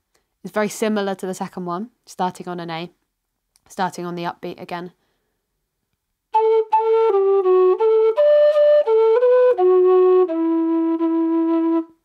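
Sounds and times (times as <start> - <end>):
low whistle playing march: 6.4 - 12.0.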